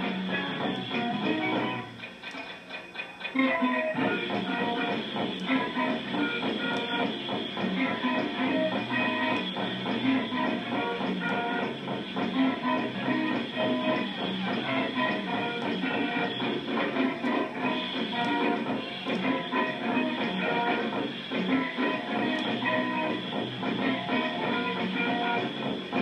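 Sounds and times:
live rock band playing: 0:00.0 - 0:02.3, 0:03.2 - 0:26.0.

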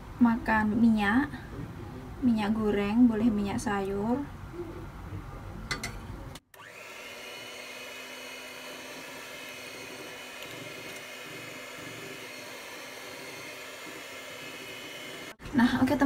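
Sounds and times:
electric mixer motor hum: 0:06.6 - 0:15.4.

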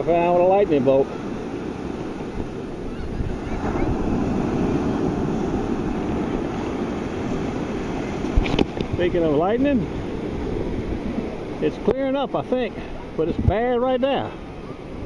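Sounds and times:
ocean surf washing: 0:00.0 - 0:15.0
wind noise on microphone: 0:01.7 - 0:11.6, 0:13.0 - 0:13.8.

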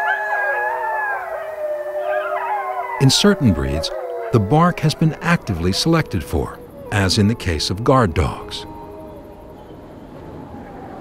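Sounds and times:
wolves howling: 0:00.0 - 0:11.0.

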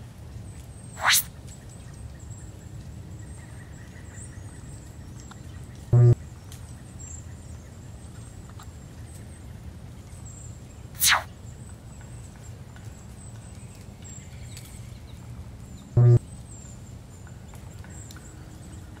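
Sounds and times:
sharp hissing burst: 0:01.0 - 0:01.3, 0:11.0 - 0:11.3
low buzzing tone: 0:05.9 - 0:06.2, 0:16.0 - 0:16.2
faint high chirps and ticks: 0:11.5 - 0:19.0.

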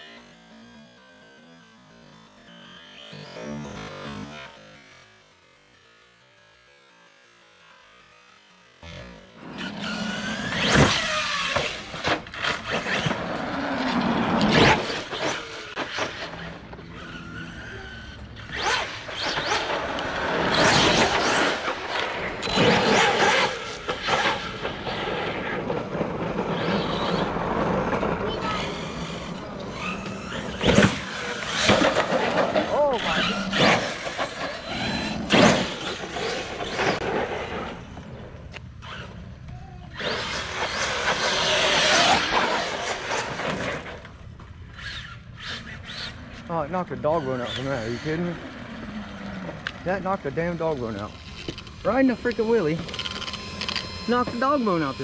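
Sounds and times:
electric motor whine: 0:00.0 - 0:44.1, 0:44.7 - 0:55.0.

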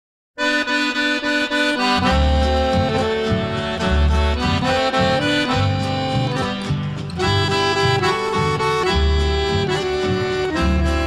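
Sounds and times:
accordion playing chords and melody: 0:00.4 - 0:11.0
low bass notes: 0:00.6 - 0:11.0.

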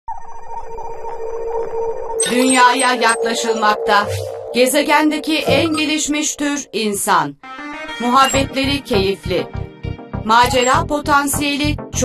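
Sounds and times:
electronic fluttering hum: 0:00.1 - 0:06.9.

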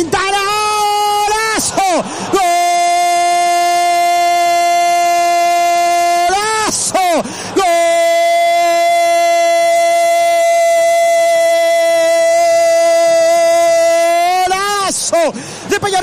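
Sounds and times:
commentator shouting goal call: 0:00.0 - 0:16.0.

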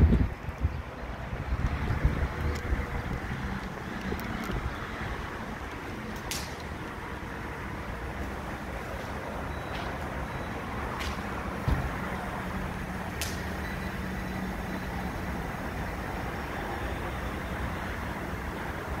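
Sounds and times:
low rumble of traffic: 0:00.0 - 0:19.0.

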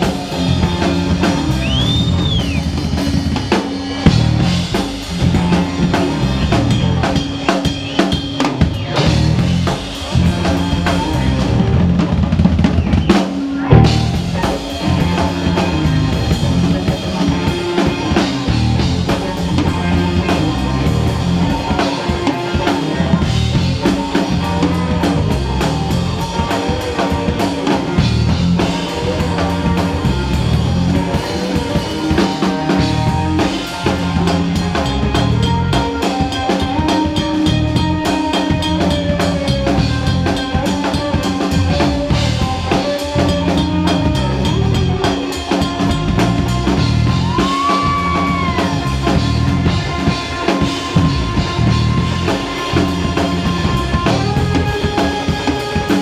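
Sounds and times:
bass: 0:00.0 - 0:56.0
drum kit: 0:00.0 - 0:56.0
electric guitar lead: 0:00.0 - 0:56.0.

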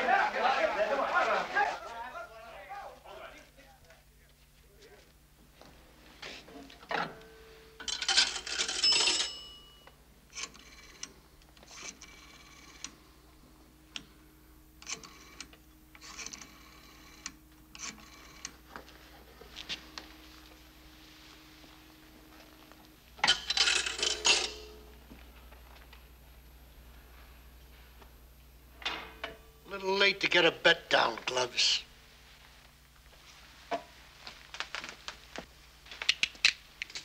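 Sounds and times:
coins clattering into phone: 0:07.8 - 0:09.6, 0:23.2 - 0:24.8
coin chimes ringing: 0:07.8 - 0:09.9, 0:23.2 - 0:24.8.

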